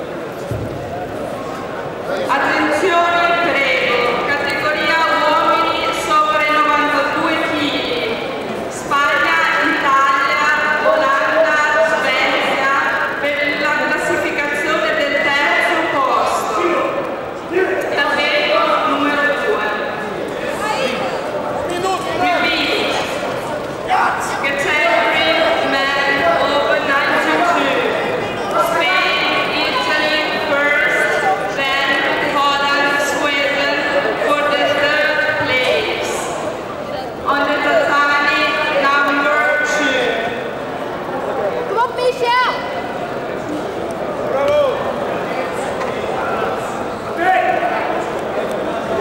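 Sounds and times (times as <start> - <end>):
people talking and calling out: 0.0 - 49.0.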